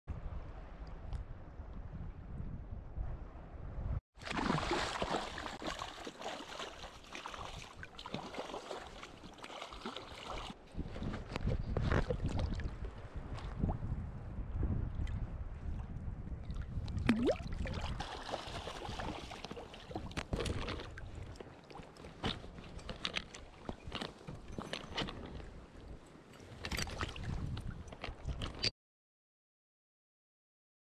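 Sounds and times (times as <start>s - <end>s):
wind on microphone: 0.1s - 4.0s, 10.6s - 19.3s, 25.0s - 28.7s
fish thrashing in water: 4.2s - 10.6s, 17.0s - 23.4s.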